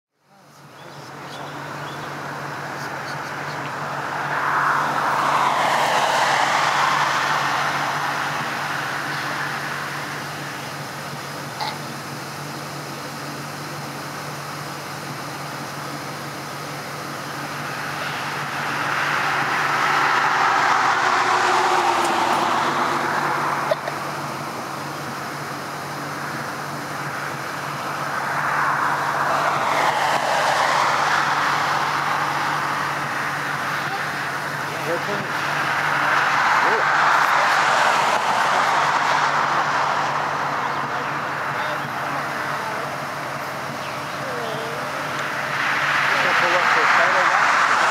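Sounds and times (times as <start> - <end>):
steady low engine hum: 0.1 - 47.9
road vehicles passing: 0.2 - 47.9.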